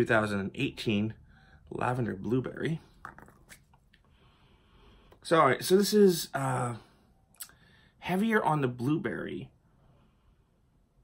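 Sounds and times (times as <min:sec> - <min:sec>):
candle container clicks: 0:03.0 - 0:03.6.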